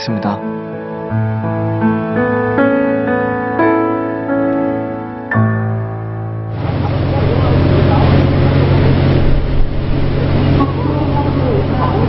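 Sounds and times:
harbour noise: 0:05.4 - 0:12.0
boat engine idling: 0:06.5 - 0:12.0.

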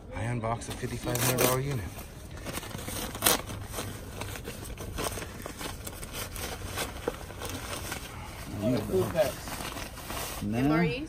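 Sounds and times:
plastic bag crinkling: 0:00.7 - 0:10.6.

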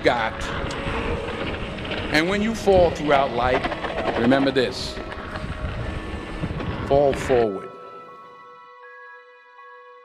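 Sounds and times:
man speaking: 0:00.0 - 0:00.6, 0:02.1 - 0:03.6, 0:04.2 - 0:05.0, 0:06.9 - 0:07.8
mountain bike rumbling on dirt trail: 0:00.0 - 0:07.4
wind rushing over microphone: 0:00.0 - 0:07.8.

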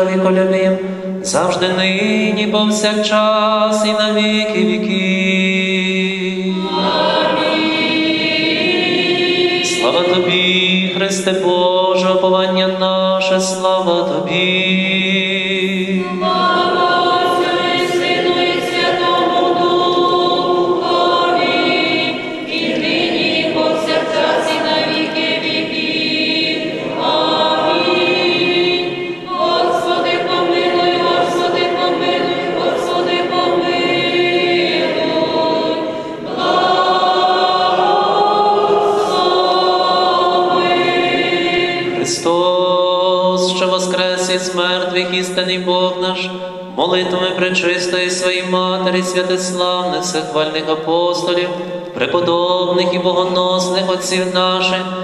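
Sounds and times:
choir singing in parts: 0:00.8 - 0:55.0.

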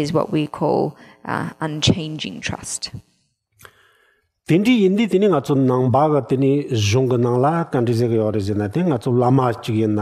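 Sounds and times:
man talking: 0:04.5 - 0:10.0.

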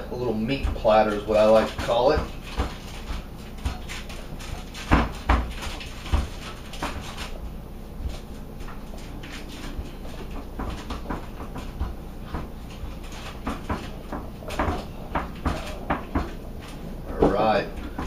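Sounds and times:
aluminium foil crinkling: 0:00.4 - 0:11.4.

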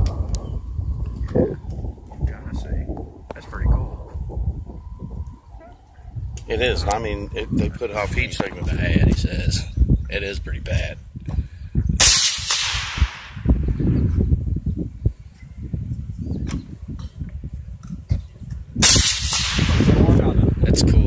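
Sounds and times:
rifle shots with echo: 0:12.0 - 0:13.6, 0:18.8 - 0:20.5.

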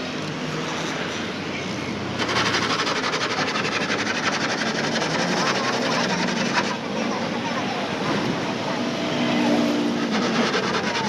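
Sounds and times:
vehicle engine rattling: 0:02.1 - 0:11.0
voices: 0:05.0 - 0:11.0.

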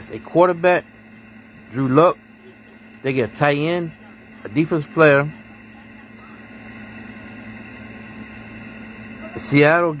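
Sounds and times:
low hum: 0:00.0 - 0:10.0.

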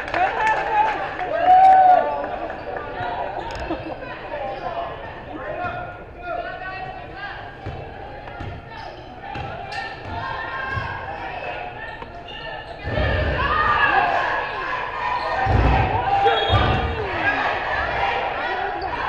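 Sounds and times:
voices of players and spectators: 0:00.0 - 0:19.0.

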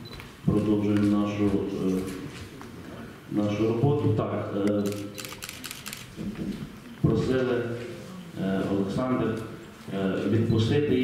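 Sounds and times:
man speaking over microphone: 0:00.4 - 0:02.3, 0:03.3 - 0:05.1, 0:07.0 - 0:11.0
sharp clicks: 0:04.6 - 0:06.1.

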